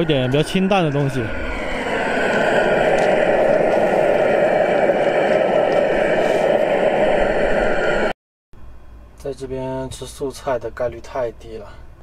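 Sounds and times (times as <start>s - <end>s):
gas burner flame rushing: 0.0s - 8.2s.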